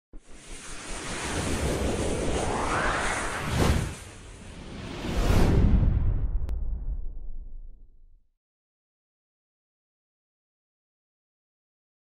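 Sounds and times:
whoosh with low rumble: 0.2 - 8.3.

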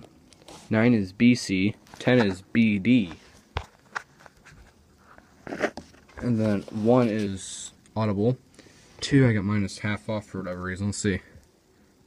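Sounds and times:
paper page rustling: 3.0 - 7.4.

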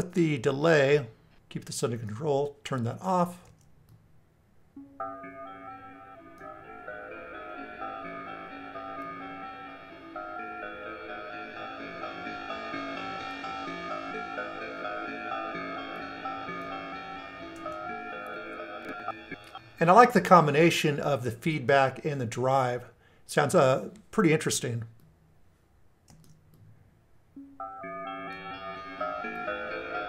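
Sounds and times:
looped electronic melody with echoes: 4.8 - 20.1, 27.4 - 30.0.

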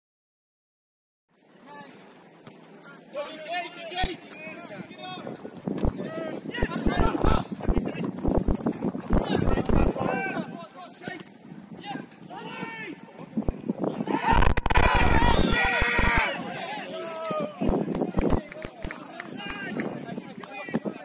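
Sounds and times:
players shouting to one another: 14.0 - 17.6.

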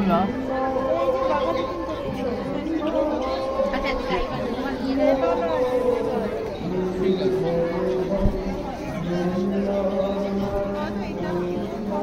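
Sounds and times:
overlapping crowd chatter: 0.0 - 12.0.

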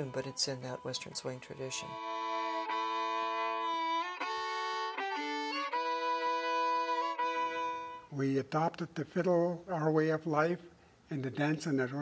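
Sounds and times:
solo fiddle playing slow tune: 0.0 - 8.2.

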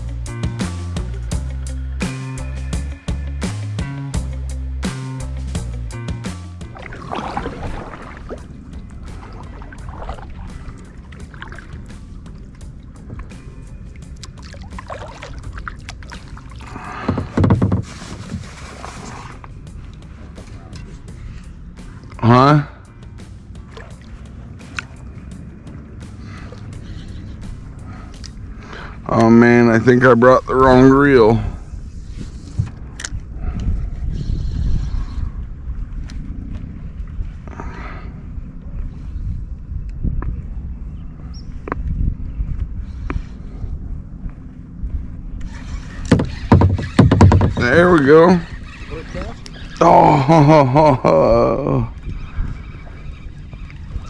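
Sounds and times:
steady low rumble: 0.0 - 17.4, 18.4 - 45.8
water slapping against hull: 6.6 - 22.2, 23.2 - 26.8, 45.4 - 49.8
water splashing off paddle: 6.7 - 12.0, 14.2 - 19.4
water drips and clicks: 13.9 - 17.8, 24.7 - 25.0
paddle knocking plastic hull: 16.9 - 19.2, 46.1 - 47.8.

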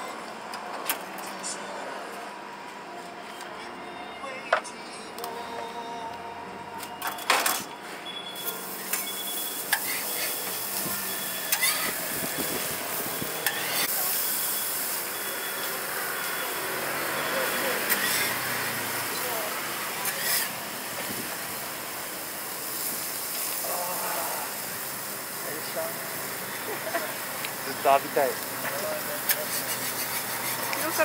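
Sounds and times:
food sizzling on a griddle: 8.3 - 31.0.

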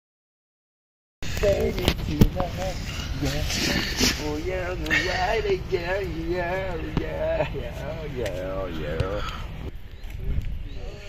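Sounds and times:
steady low rumble: 1.2 - 10.8.

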